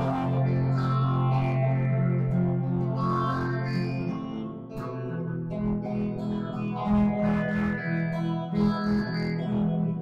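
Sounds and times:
guitar duet: 0.0 - 10.0.

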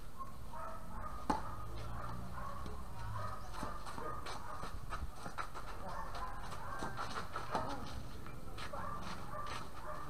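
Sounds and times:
outdoor background noise: 0.0 - 10.0
ball bouncing on hard court: 1.0 - 5.5
tennis ball struck by rackets: 1.1 - 1.9.

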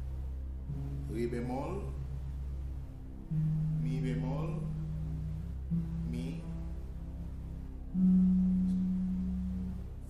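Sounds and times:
guitar note plucked: 3.3 - 6.8, 7.9 - 9.9.

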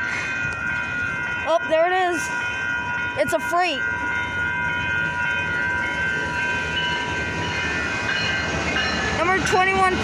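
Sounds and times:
crossing bell ringing tones: 0.0 - 10.0
train rumbling past: 0.0 - 10.0.

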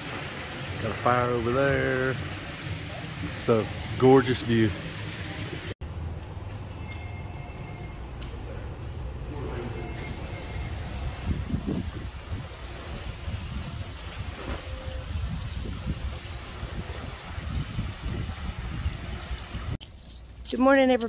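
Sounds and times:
fountain water splashing: 0.0 - 5.8, 10.7 - 19.8
wind buffeting microphone: 10.9 - 19.8.

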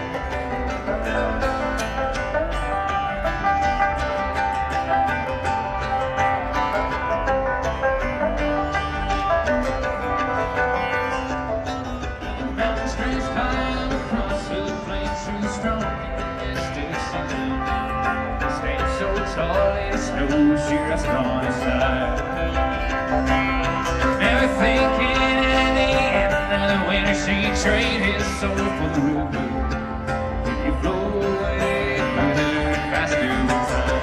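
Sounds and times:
plucked strings picking melody: 0.0 - 34.0
steady bass line: 0.0 - 34.0.

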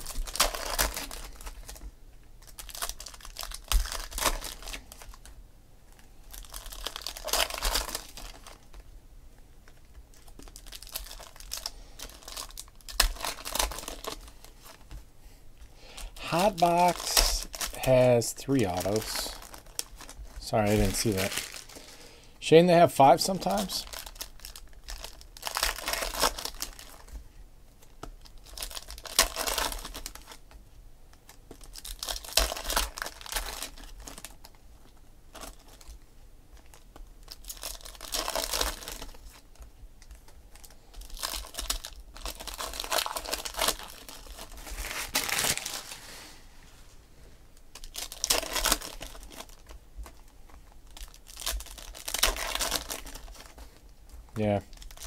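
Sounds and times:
foil wrappers crinkling and tearing: 0.0 - 8.8, 9.6 - 15.0, 15.9 - 22.2, 23.0 - 27.2, 27.8 - 30.6, 31.2 - 46.4, 47.7 - 55.0.

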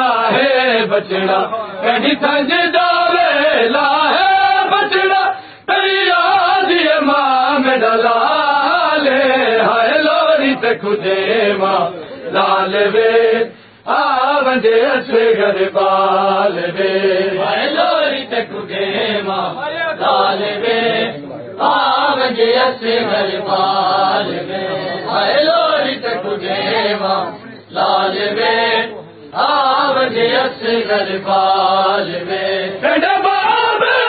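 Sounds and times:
men chanting a mourning lament: 0.0 - 34.0.

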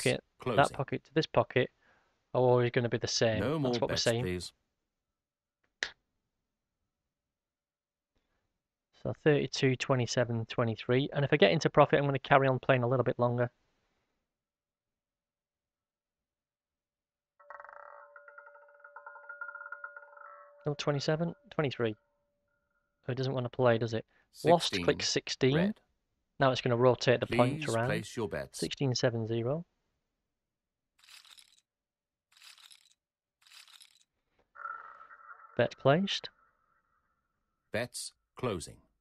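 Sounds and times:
fluttering run of bell-like tones: 17.6 - 20.6
casino chips clinking: 31.0 - 31.6, 32.4 - 34.0.

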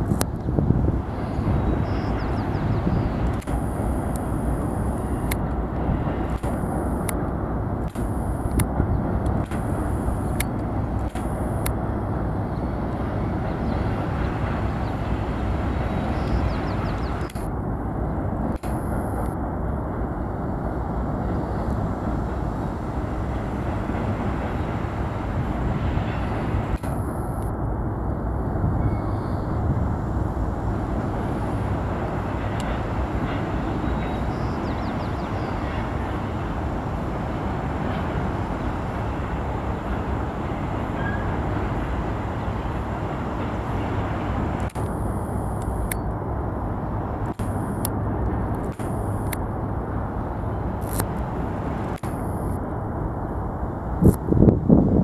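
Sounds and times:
freight train rumbling across bridge: 0.0 - 55.0
sharp clicks: 3.2 - 5.5, 6.3 - 7.2, 7.8 - 11.8, 17.2 - 17.5, 44.6 - 46.0, 47.2 - 49.4, 51.9 - 52.6.

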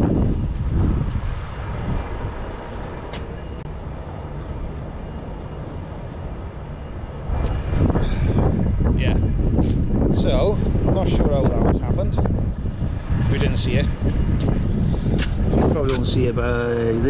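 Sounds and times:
vehicle engine rumbling: 0.0 - 17.0.

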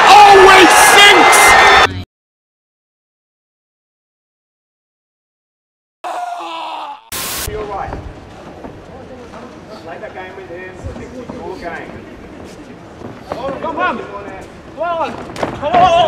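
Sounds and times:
people shouting: 0.0 - 1.9, 6.0 - 7.2.

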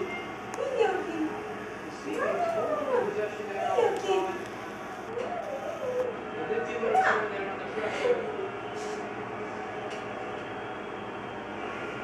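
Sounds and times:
high sliding vocal calls: 5.0 - 6.1.

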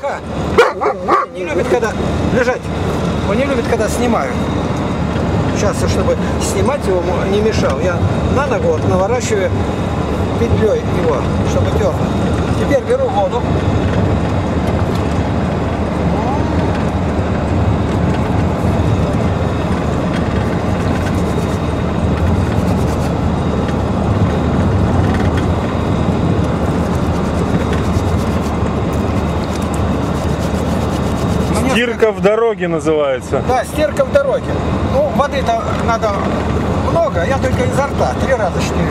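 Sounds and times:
road and engine noise in vehicle cabin: 0.0 - 38.9.

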